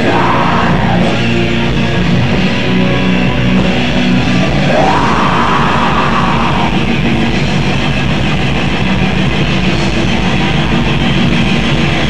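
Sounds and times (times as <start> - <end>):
distorted guitar: 0.0 - 12.0
fast drumming: 3.6 - 12.0.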